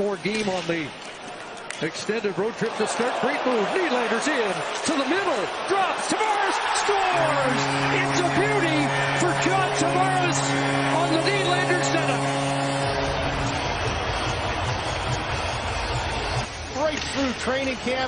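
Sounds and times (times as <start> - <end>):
crowd cheering: 1.2 - 16.6
goal horn low chord: 6.4 - 15.4.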